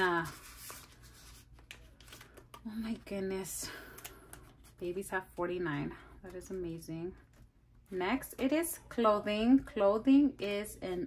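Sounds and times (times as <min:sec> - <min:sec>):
paper bills rustling: 0:00.0 - 0:03.0.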